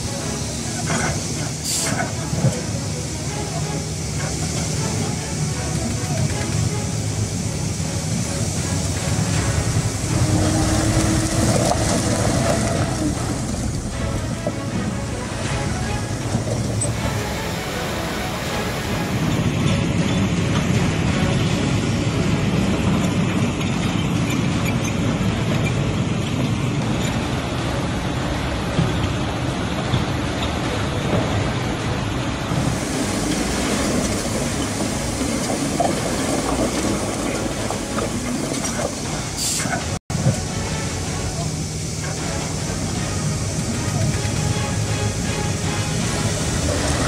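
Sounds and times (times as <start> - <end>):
floodwater rushing: 0.0 - 47.0
heavy machinery engines: 0.0 - 47.0
rock being pushed: 32.9 - 39.2.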